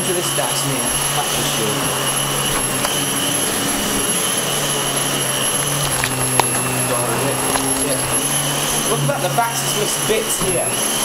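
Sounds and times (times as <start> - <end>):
vacuum cleaner running: 0.0 - 11.0.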